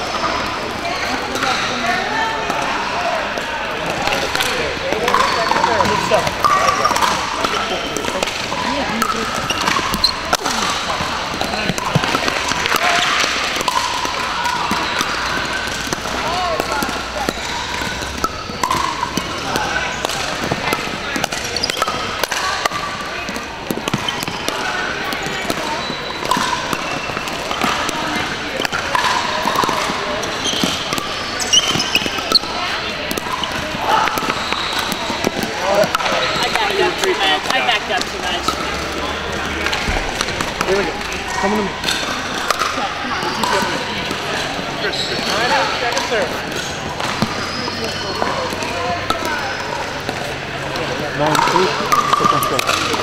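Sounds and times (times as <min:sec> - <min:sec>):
indistinct chatter: 0:00.0 - 0:53.0.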